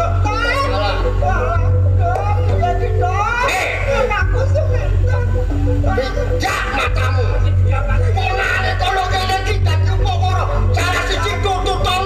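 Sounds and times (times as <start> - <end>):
low electrical hum: 0.0 - 12.0
voices through loudspeakers: 0.0 - 12.0.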